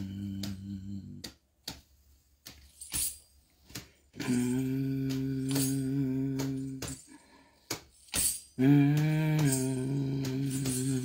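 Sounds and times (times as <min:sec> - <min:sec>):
low hummed tone: 0:00.0 - 0:01.3, 0:04.2 - 0:07.2, 0:08.3 - 0:11.0.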